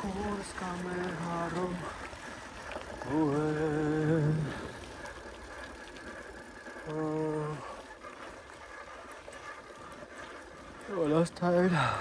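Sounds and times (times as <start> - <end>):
bicycle riding noise: 0.0 - 12.0.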